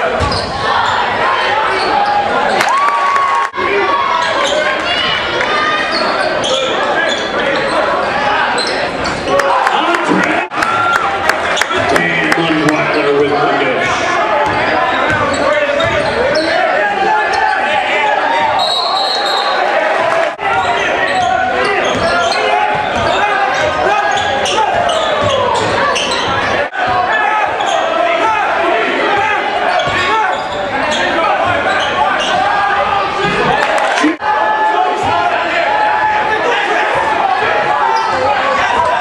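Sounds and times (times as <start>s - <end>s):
crowd shouting and cheering: 0.0s - 39.0s.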